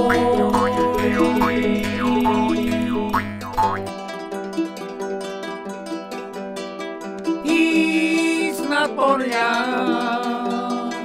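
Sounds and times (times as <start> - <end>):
jaw harp twanging: 0.0 - 4.0
plucked strings and chords: 0.0 - 11.0.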